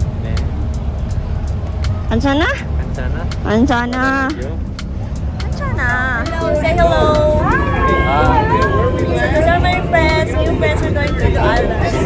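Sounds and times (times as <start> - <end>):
ship engine rumble: 0.0 - 12.0
wind: 0.0 - 12.0.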